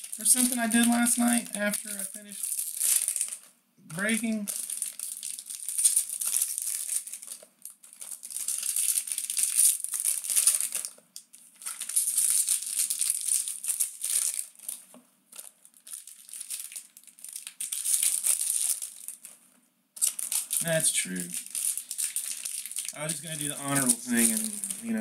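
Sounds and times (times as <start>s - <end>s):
wrapper tearing open: 0.0s - 19.4s, 20.0s - 25.0s
foil wrapper crinkling: 0.0s - 25.0s.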